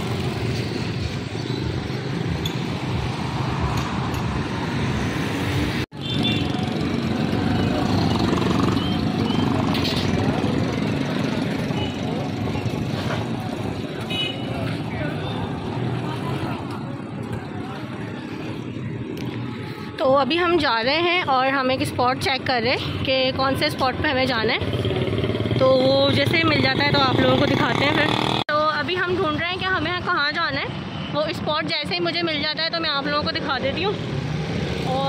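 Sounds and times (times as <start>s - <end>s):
vehicles running past: 0.0s - 35.0s
voices of passers-by: 0.0s - 35.0s
motorcycles running past: 6.4s - 13.6s.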